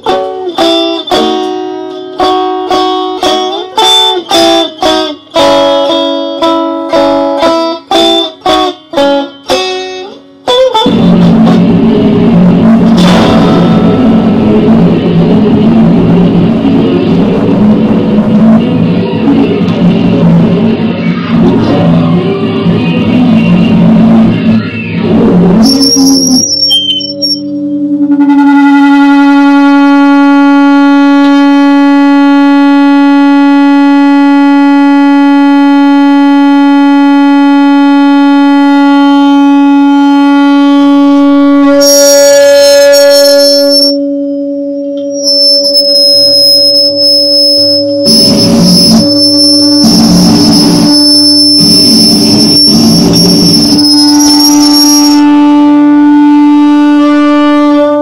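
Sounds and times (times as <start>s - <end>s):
loud electric guitar drone: 0.0s - 58.0s
pulsing low bursts: 10.9s - 26.4s, 45.2s - 56.2s
thin wavering high whine: 11.2s - 56.5s.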